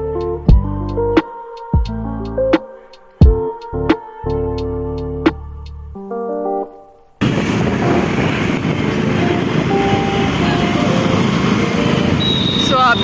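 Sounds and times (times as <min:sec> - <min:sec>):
street traffic: 0:07.2 - 0:13.0
wind noise on microphone: 0:07.2 - 0:13.0.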